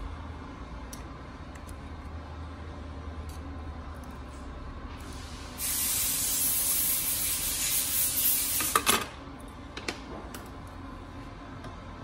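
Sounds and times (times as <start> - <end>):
loud spray hiss: 5.3 - 8.6.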